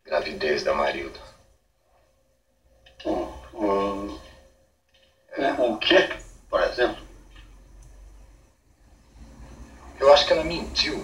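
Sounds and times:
background hiss: 0.0s - 11.0s
faint low hum: 0.0s - 11.0s.

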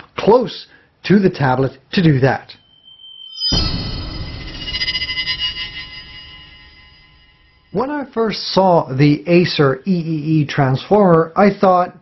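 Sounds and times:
ringing electronic hit: 2.6s - 7.8s.

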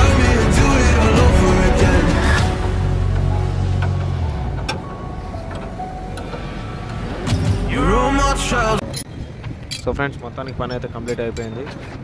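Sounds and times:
background music: 0.0s - 9.0s
spanners clinking on steel: 8.8s - 12.0s.

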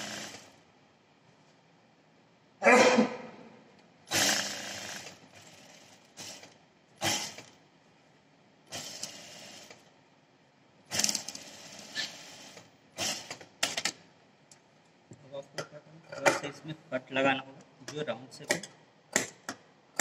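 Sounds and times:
sewing machine stitching: 0.0s - 0.6s, 4.1s - 7.5s.

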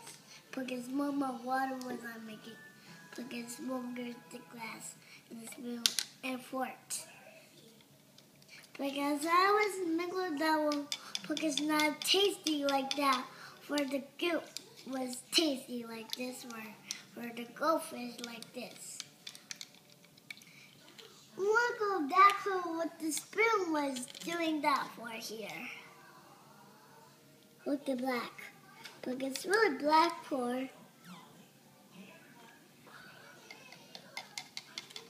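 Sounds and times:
plastic stirrer clicking in cup: 33.9s - 35.0s.

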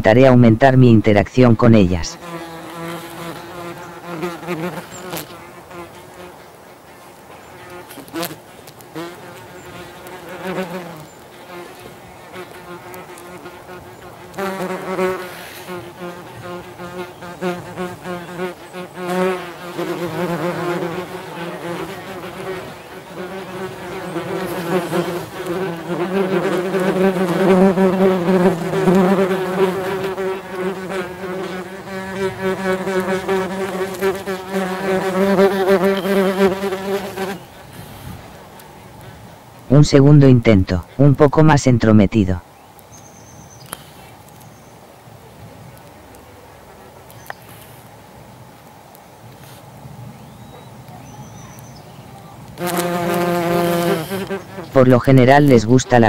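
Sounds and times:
wasps buzzing in flight: 2.2s - 6.3s, 7.5s - 37.7s, 52.6s - 54.7s.

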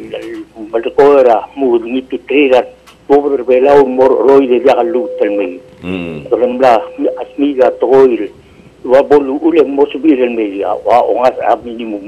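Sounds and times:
man talking: 0.0s - 8.3s, 8.9s - 12.0s.

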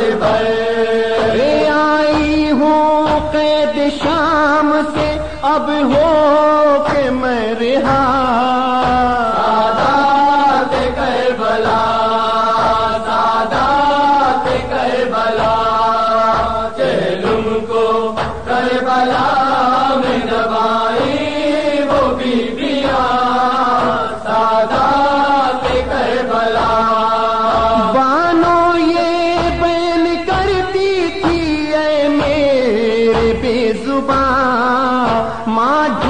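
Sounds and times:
person chanting a lament: 0.0s - 36.0s.

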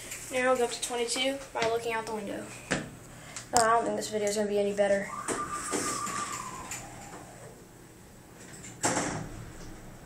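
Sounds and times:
elevator machine whine: 5.0s - 8.2s.

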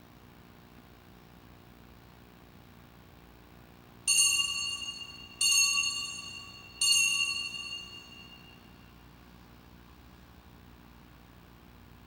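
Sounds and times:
altar bell ringing: 4.1s - 8.8s.

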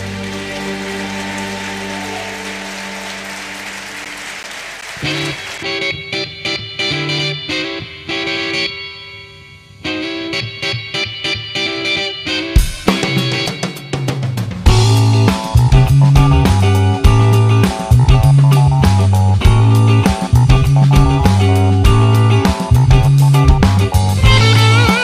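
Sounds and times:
electric guitar picked notes: 5.0s - 25.0s.

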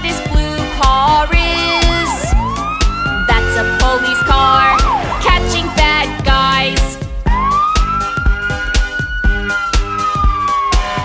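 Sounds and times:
children's song backing track: 0.0s - 11.0s
cartoon police siren wail: 1.4s - 6.2s, 7.2s - 11.0s.

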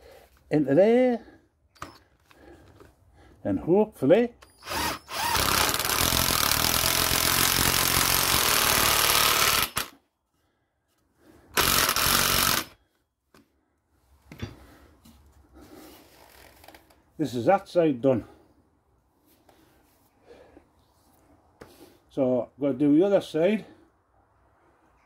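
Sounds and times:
impact driver driving a screw: 4.5s - 9.9s, 11.6s - 12.8s.

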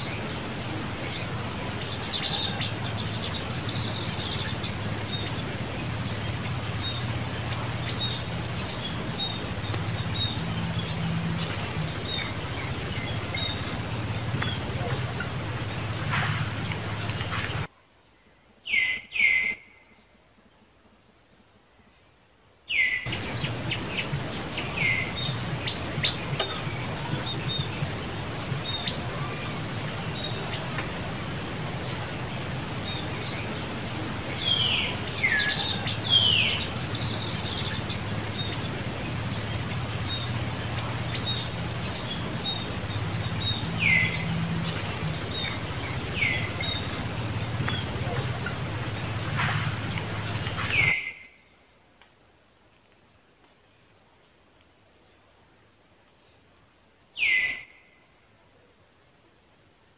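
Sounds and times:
outdoor background noise: 0.0s - 59.9s.

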